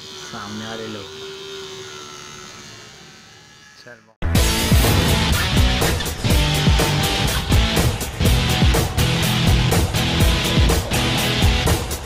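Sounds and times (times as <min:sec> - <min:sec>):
small water pump motor whining: 0:00.0 - 0:12.0.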